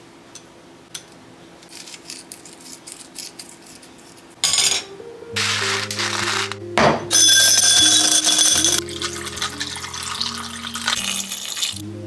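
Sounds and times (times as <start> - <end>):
background music with low notes: 4.8 - 12.0
ice cubes rattling: 7.5 - 11.8
drink poured over ice: 8.3 - 11.8.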